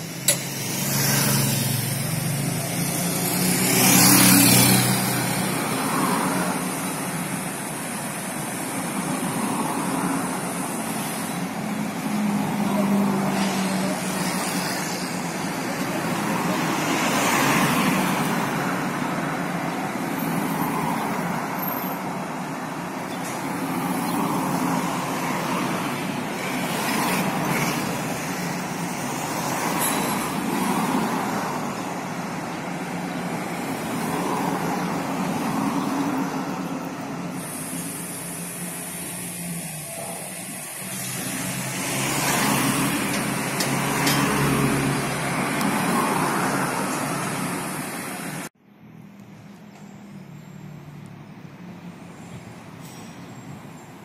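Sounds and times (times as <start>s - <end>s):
vehicles passing: 0.0s - 54.0s.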